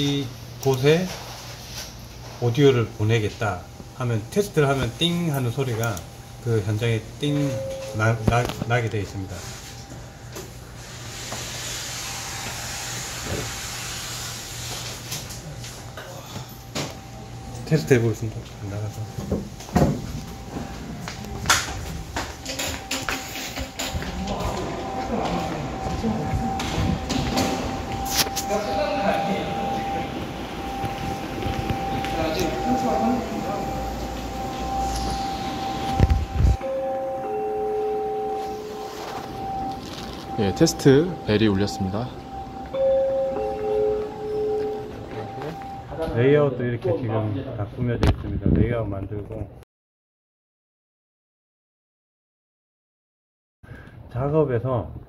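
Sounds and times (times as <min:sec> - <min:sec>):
faint steady high tone: 0:06.5 - 0:09.6, 0:22.4 - 0:46.3
steady hiss: 0:10.7 - 0:15.1.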